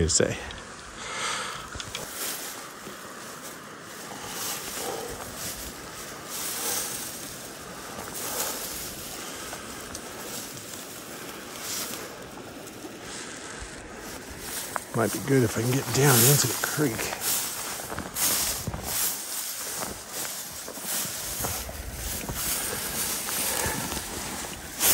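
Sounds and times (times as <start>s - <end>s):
creek water rushing: 0.0s - 24.9s.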